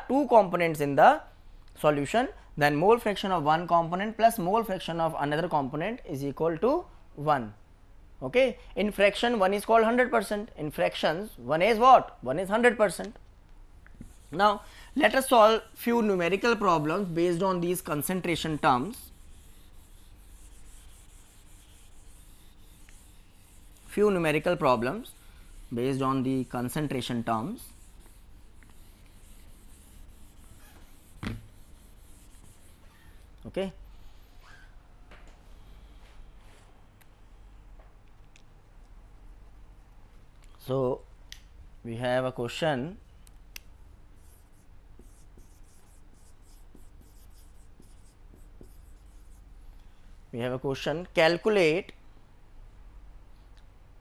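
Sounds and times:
duster rubbing on whiteboard: 14.0s - 33.3s, 44.2s - 49.5s.

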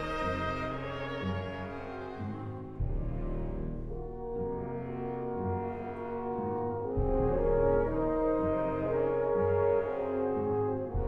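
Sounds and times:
orchestra playing heavy chords: 0.0s - 11.0s.

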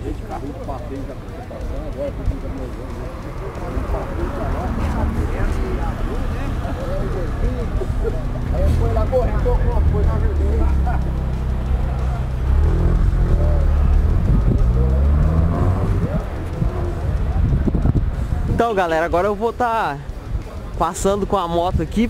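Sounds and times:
people talking: 0.0s - 22.0s
vehicle engine rumbling: 0.0s - 22.0s.

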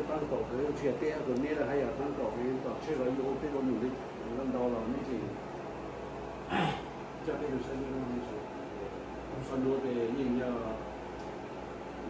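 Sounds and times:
loud breathy exclamation: 6.5s - 6.9s.

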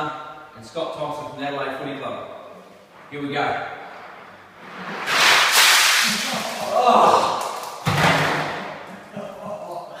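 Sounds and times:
water splashing on tiled floor: 5.0s - 7.8s
sudden thud: 7.8s - 8.7s.

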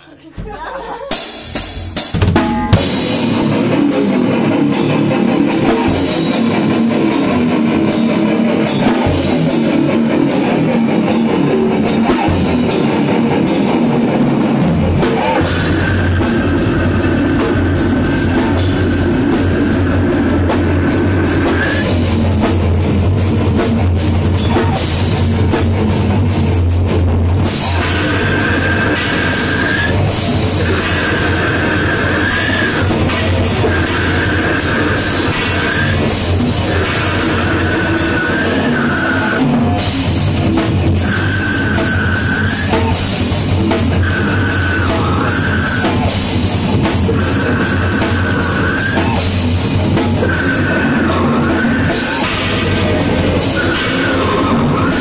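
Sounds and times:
death metal band playing: 0.9s - 55.0s
high held tone: 2.2s - 3.7s.

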